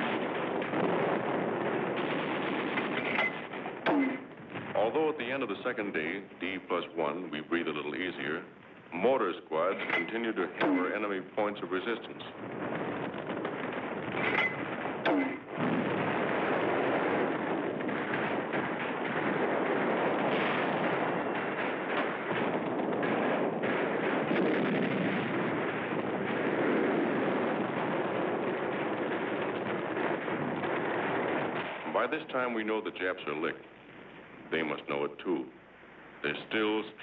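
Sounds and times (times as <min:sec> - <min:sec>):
gunfire: 0:00.0 - 0:05.1, 0:09.6 - 0:11.4, 0:12.3 - 0:32.5
explosions: 0:00.0 - 0:37.0
sharp cracks: 0:00.0 - 0:37.0.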